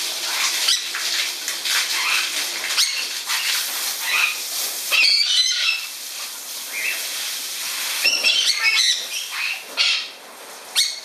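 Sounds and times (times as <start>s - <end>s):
parrot squawk: 2.0s - 5.9s, 8.0s - 11.0s.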